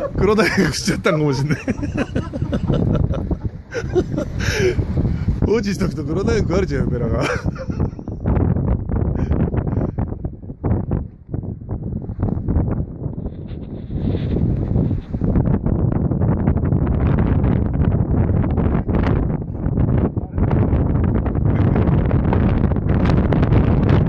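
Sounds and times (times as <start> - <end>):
strong wind buffeting microphone: 0.0 - 24.0.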